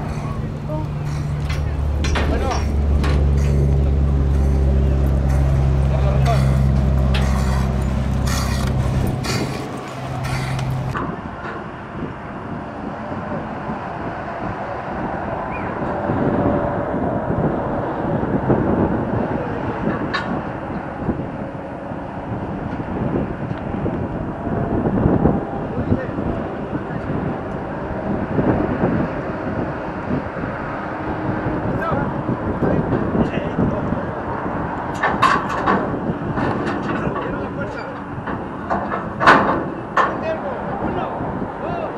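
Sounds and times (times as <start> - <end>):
people talking: 0.0 - 7.6, 25.6 - 27.2, 31.7 - 34.2, 36.8 - 38.0, 40.1 - 41.9
outdoor background noise: 0.0 - 41.9.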